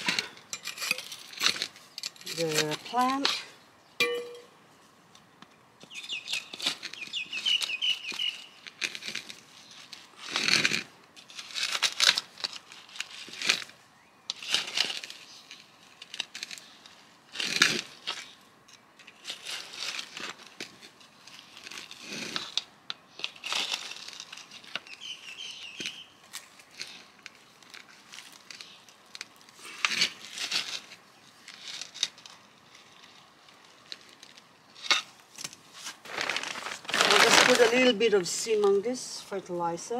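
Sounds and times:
trowel scraping through dry soil: 0.0s - 3.4s, 5.9s - 39.0s.

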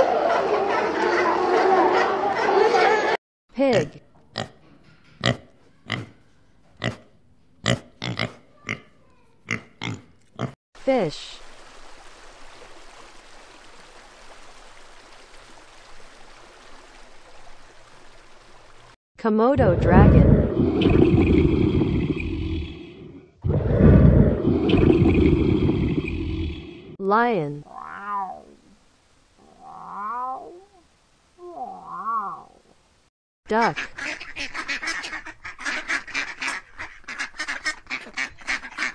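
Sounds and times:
pigs grunting: 5.2s - 6.2s, 6.8s - 10.6s
low growling roar: 19.6s - 26.9s.

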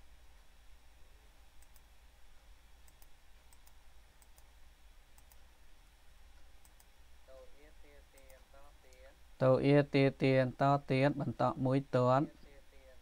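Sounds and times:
computer mouse clicks: 1.6s - 1.9s, 2.8s - 4.5s, 5.1s - 5.5s, 6.4s - 7.0s, 8.2s - 9.1s.

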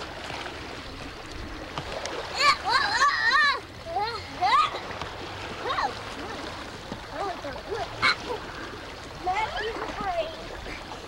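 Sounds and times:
steady outdoor hiss: 0.0s - 11.0s.

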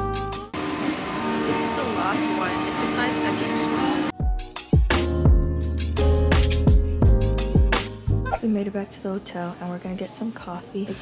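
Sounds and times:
music playing: 0.0s - 8.5s
shop background noise: 8.3s - 11.0s.

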